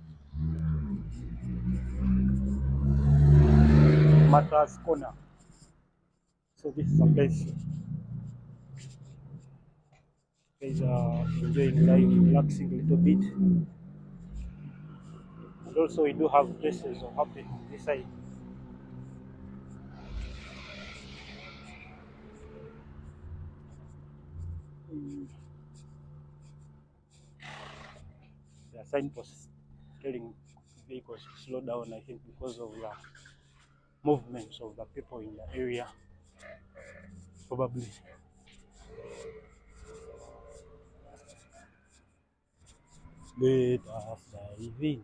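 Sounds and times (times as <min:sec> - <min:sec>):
car engine hum: 0:00.0 - 0:05.7, 0:06.6 - 0:09.7, 0:10.6 - 0:42.0, 0:42.7 - 0:45.0
faint murmured voice: 0:10.6 - 0:13.4, 0:24.9 - 0:25.4, 0:43.3 - 0:45.0.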